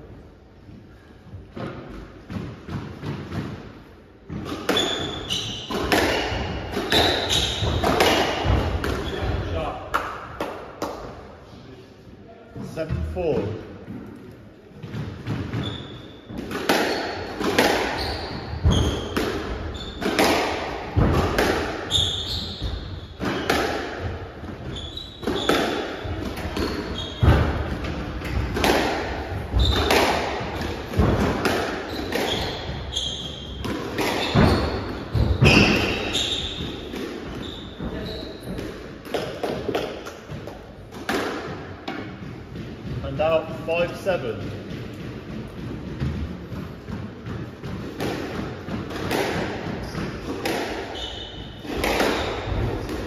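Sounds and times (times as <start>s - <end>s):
squash ball cracking off rackets and walls: 1.5s - 11.2s, 14.8s - 43.3s, 44.2s - 53.0s
shoes squeaking on wooden floor: 4.3s - 9.6s, 14.8s - 20.5s, 21.7s - 28.7s, 29.3s - 40.7s, 48.9s - 53.0s.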